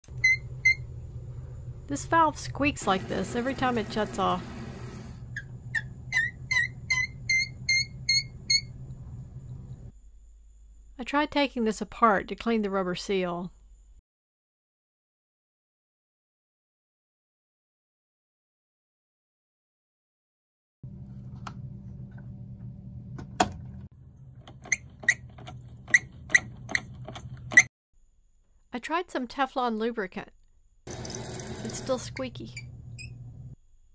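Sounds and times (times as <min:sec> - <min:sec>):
toilet fill valve squeaking: 0:00.1 - 0:00.9, 0:02.8 - 0:08.8, 0:24.5 - 0:27.7, 0:30.9 - 0:33.6
low steady hum: 0:00.1 - 0:04.4, 0:20.9 - 0:25.9.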